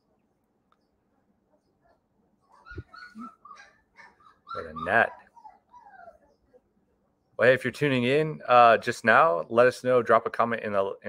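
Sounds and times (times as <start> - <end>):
puppies whimpering and yipping: 2.4 - 6.5.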